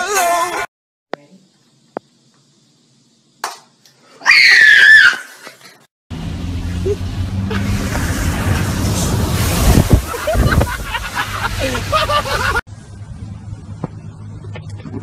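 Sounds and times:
high-pitched scream: 4.2s - 5.4s
car driving through water: 6.2s - 12.6s
water rushing and splashing: 6.2s - 12.6s.

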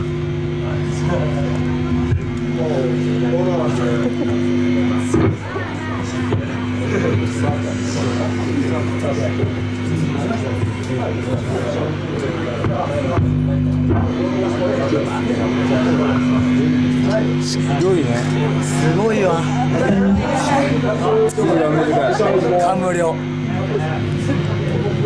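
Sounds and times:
electric guitar ringing tones: 0.0s - 21.4s.

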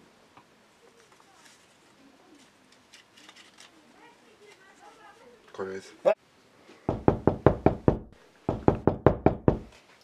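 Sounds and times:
rapid knocking on door: 6.9s - 9.7s.

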